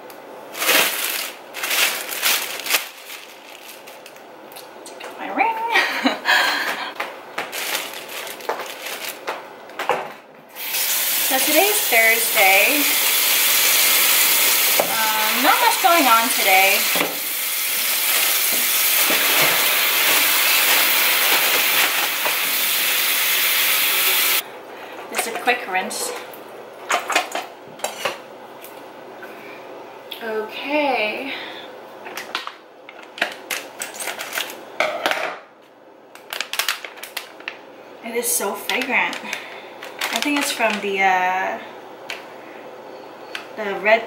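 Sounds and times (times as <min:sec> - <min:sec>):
packaging crinkling and crackling: 0:00.5 - 0:04.7, 0:07.4 - 0:09.4, 0:33.0 - 0:34.6, 0:36.1 - 0:37.7, 0:38.6 - 0:41.0.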